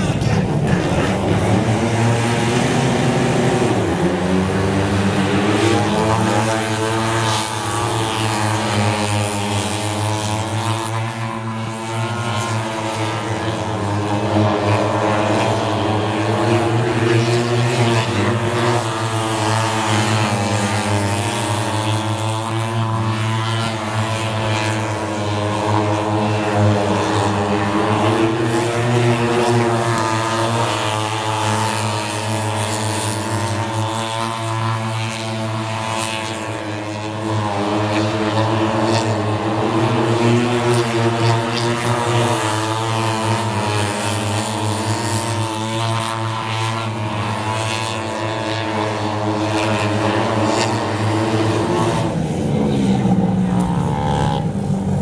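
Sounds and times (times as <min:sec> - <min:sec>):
motorcycle engines racing: 0:00.0 - 0:55.0.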